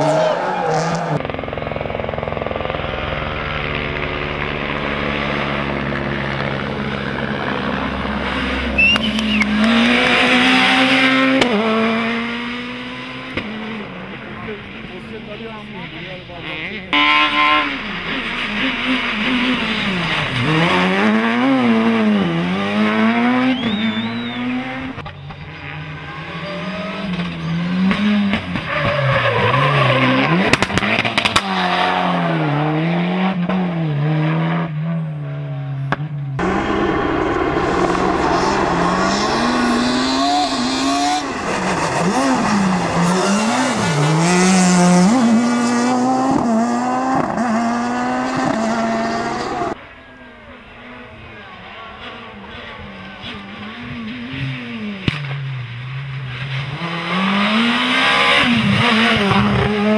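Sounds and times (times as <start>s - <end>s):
rally car engines revving: 0.0s - 59.9s.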